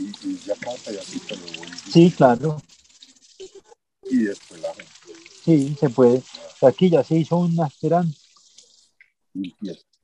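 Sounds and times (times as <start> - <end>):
hose water spattering: 0.0 - 9.9.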